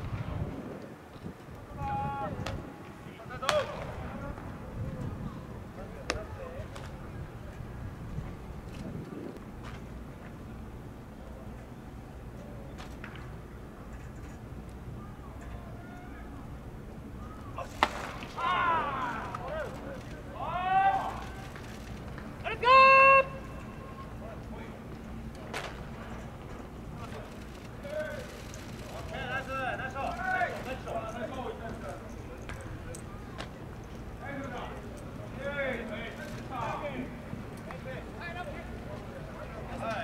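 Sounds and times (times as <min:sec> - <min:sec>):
low steady background hum: 0:00.0 - 0:40.0
open-air ballpark noise: 0:00.0 - 0:40.0
baseball smacking into mitt: 0:17.6 - 0:18.4
player shouting: 0:18.4 - 0:19.6, 0:20.4 - 0:21.4, 0:22.4 - 0:23.6.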